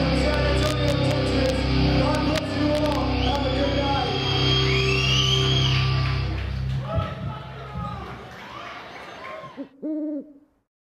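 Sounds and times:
crowd noise: 0.0s - 9.8s
owl-like hoots: 9.6s - 10.4s.

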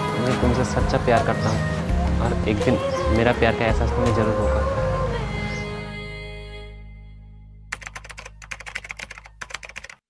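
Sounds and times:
keyboard typing clicks: 7.7s - 10.0s.

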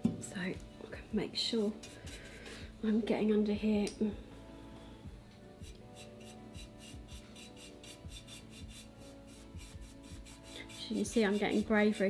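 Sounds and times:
paintbrush scrubbing glazed surface: 5.6s - 12.0s.

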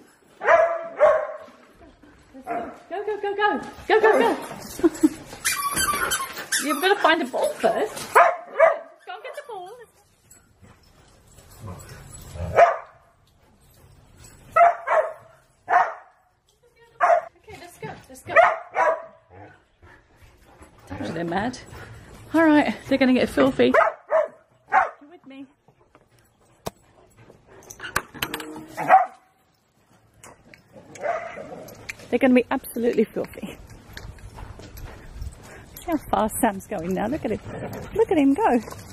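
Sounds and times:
dogs barking: 0.4s - 1.5s, 8.1s - 9.0s, 12.5s - 13.1s, 14.6s - 16.2s, 18.3s - 19.5s, 23.7s - 25.0s, 28.8s - 29.3s, 30.9s - 31.5s
dog barking and whining: 28.6s - 29.3s.

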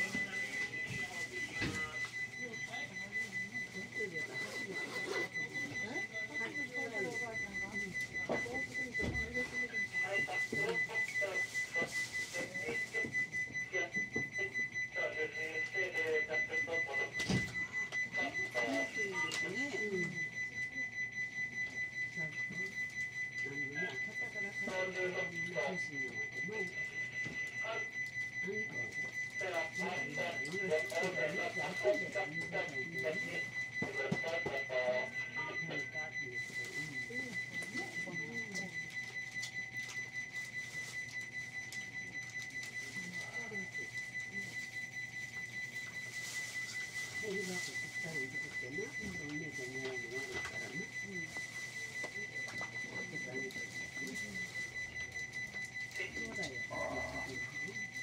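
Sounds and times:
muffled voices talking: 0.0s - 58.0s.

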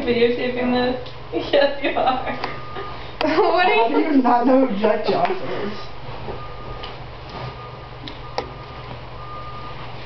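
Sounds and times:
steady low hum: 0.0s - 10.0s
faint beeping tone: 6.4s - 6.8s, 7.5s - 9.8s.

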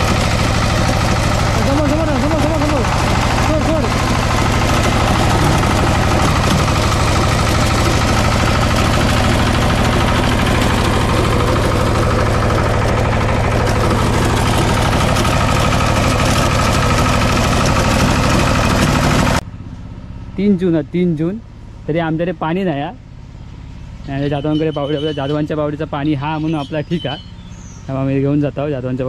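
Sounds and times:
tines churning soil: 0.0s - 19.4s, 24.1s - 25.6s
diesel tiller engine running: 0.0s - 29.0s.

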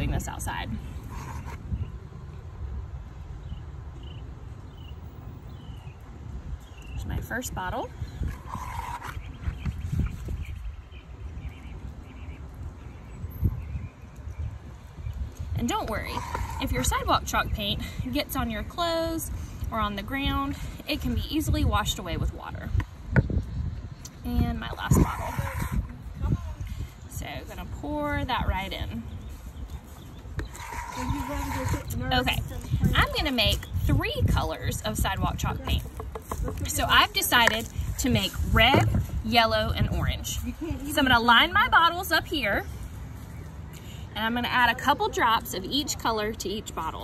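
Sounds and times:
steady low rumble: 13.6s - 45.7s.

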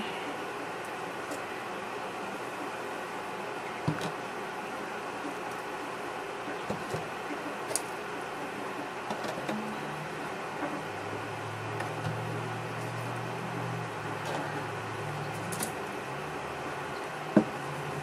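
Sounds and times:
steady background hum: 0.0s - 18.0s.

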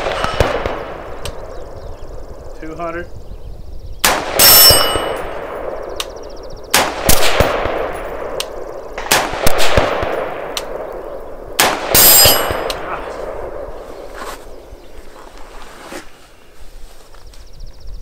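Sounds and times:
rifle shots echoing: 0.0s - 2.4s, 4.0s - 13.9s
high metallic ringing: 4.4s - 5.6s, 11.9s - 12.8s.

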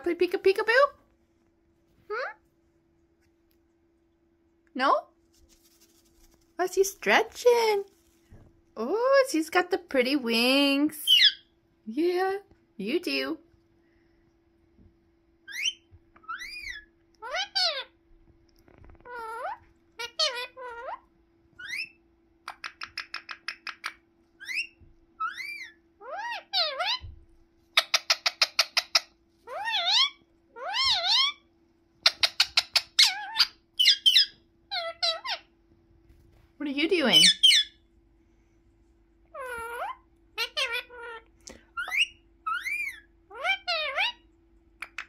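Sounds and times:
parakeet chirping and whistling: 11.0s - 11.5s, 15.4s - 17.9s, 21.6s - 27.1s, 27.8s - 35.5s, 37.1s - 37.8s, 41.7s - 44.2s.

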